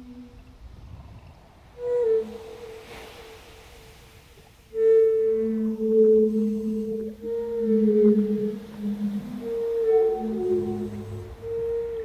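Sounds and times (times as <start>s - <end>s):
wooden flute playing long notes: 1.8s - 4.0s, 4.7s - 12.0s.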